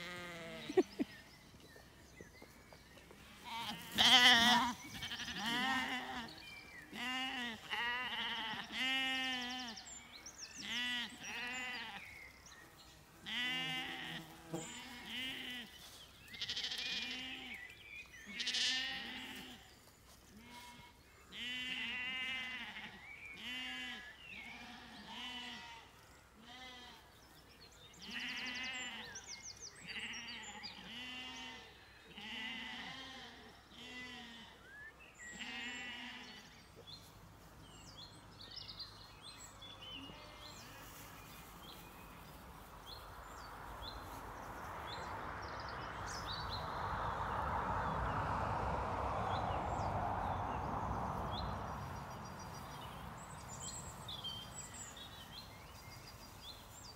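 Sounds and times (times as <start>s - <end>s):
sheep bleating: 0.0s - 1.0s, 3.2s - 9.8s, 10.6s - 12.1s, 13.2s - 17.6s, 18.3s - 19.7s, 20.3s - 27.0s, 28.0s - 29.2s, 29.9s - 34.7s, 35.3s - 36.6s, 40.0s - 41.0s.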